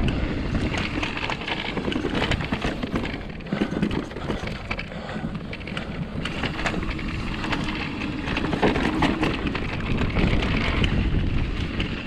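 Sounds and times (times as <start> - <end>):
bike rattles and clicks: 0.0 - 12.0
bike tyres rolling on dirt: 0.0 - 12.0
wind noise on microphone: 0.0 - 12.0.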